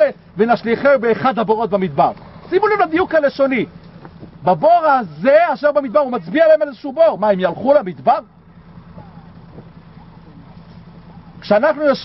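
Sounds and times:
man's voice: 0.0 - 3.8, 4.4 - 8.4, 11.4 - 12.0
faint low outdoor hum: 0.0 - 12.0.

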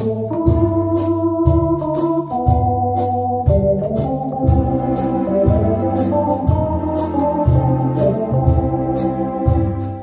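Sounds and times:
drum beat: 0.0 - 8.9
bass notes: 0.0 - 10.0
electronic organ playing chords: 0.0 - 10.0.

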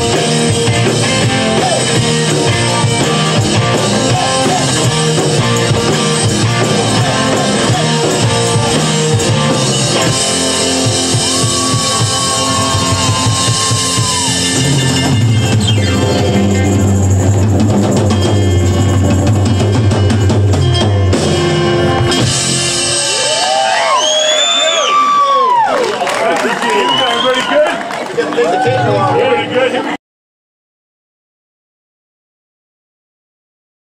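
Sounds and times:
drum kit: 0.0 - 24.7
bass guitar: 0.0 - 24.9
electric guitar: 0.0 - 25.9
high gliding whoops: 11.0 - 16.1, 22.9 - 26.0.

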